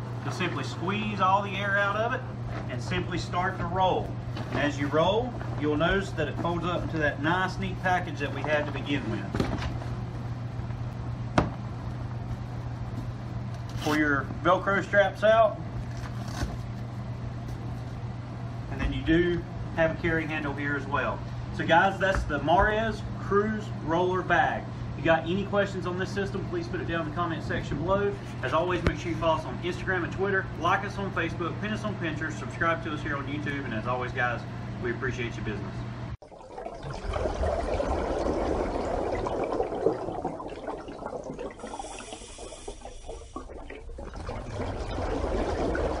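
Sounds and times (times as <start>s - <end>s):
steady low hum: 0.0s - 46.0s
water bubbling and splashing: 36.2s - 46.0s.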